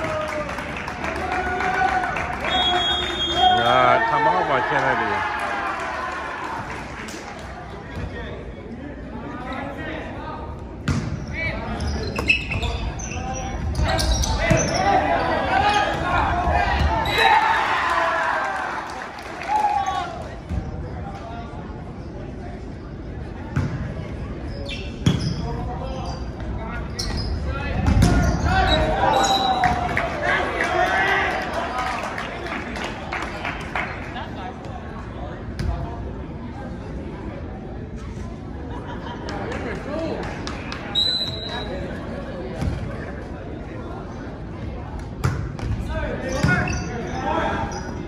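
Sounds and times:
players and spectators voices: 0.0 - 48.0.

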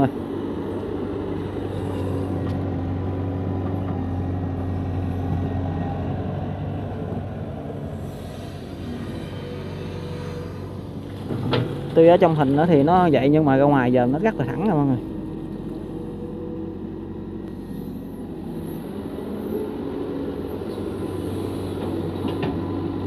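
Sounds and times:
excavator diesel engine running: 0.0 - 23.0.

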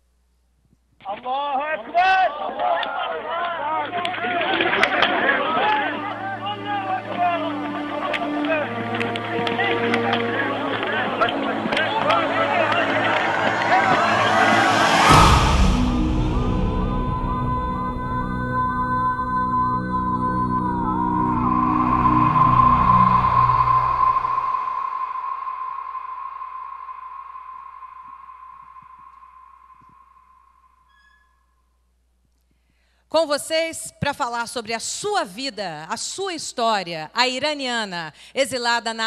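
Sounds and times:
voices: 1.2 - 15.3
dark ambient music drone: 4.2 - 30.9
rush of noise: 10.5 - 18.1, 20.9 - 30.4
deep rumble: 10.7 - 30.7
high-pitched electronic tone: 11.3 - 31.2.

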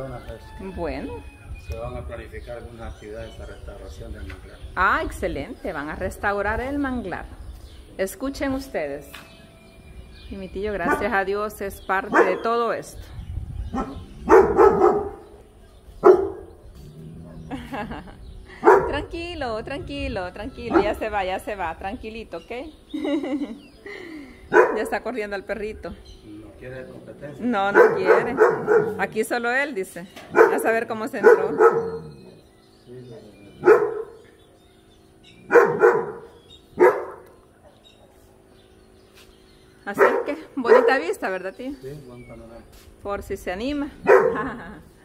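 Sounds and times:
dog barking: 10.8 - 11.2, 12.1 - 12.5, 13.7 - 15.4, 16.0 - 16.5, 18.6 - 19.0, 20.7 - 21.0, 24.5 - 24.9, 27.7 - 29.0, 30.3 - 32.2, 33.6 - 34.2, 35.4 - 37.3, 39.9 - 41.1, 44.0 - 44.5.

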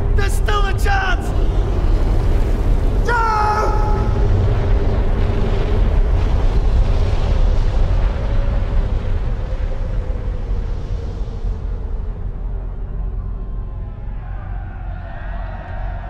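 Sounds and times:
deep explosion-like rumble: 0.0 - 16.0.

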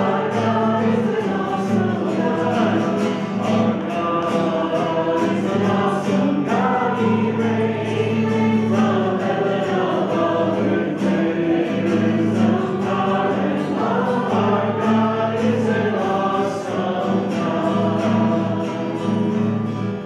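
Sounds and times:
acoustic guitar strumming: 0.0 - 20.0
congregation singing: 0.0 - 20.0.

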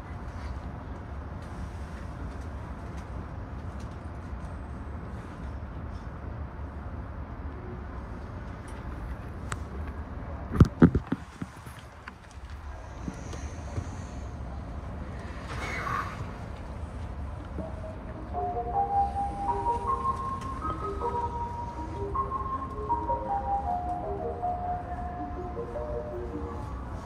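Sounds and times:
electric train humming: 16.2 - 27.0.

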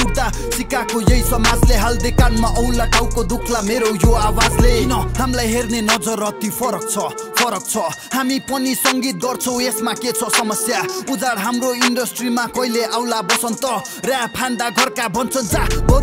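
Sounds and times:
rapping over a hip hop beat: 0.0 - 16.0
drum hits: 1.1 - 2.4.

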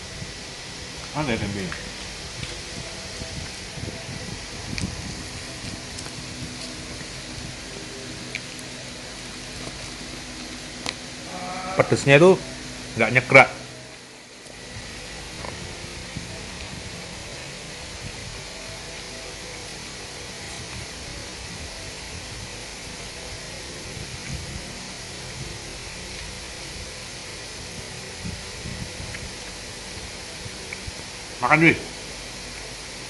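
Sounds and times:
steady background hiss: 0.0 - 33.0.

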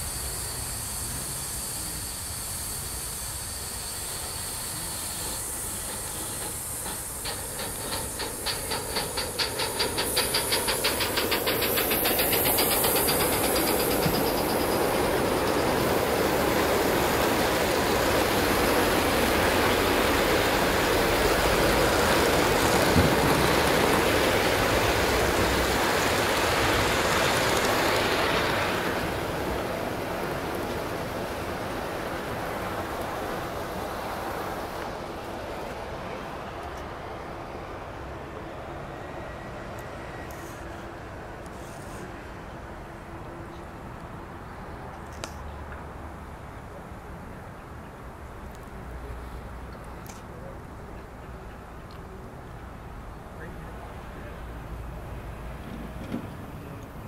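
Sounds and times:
steam hiss: 0.0 - 36.4
steam locomotive chuffing: 0.0 - 36.5
wheels clicking on rail joints: 2.7 - 37.0, 47.7 - 57.0.

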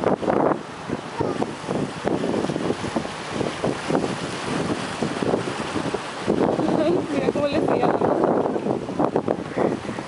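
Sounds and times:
sea wash: 0.0 - 10.0
wind buffeting microphone: 0.0 - 10.0.

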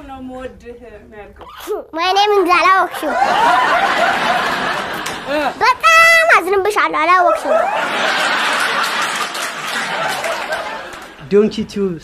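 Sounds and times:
child speaking: 1.4 - 3.3, 5.4 - 7.6.

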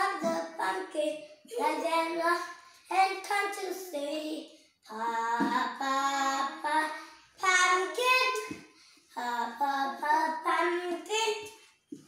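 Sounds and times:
young children singing: 0.0 - 11.6.

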